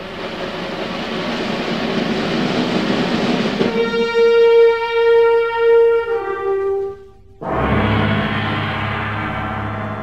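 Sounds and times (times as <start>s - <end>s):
orchestra hissing wash: 0.0s - 6.3s
held brass note: 3.6s - 10.0s.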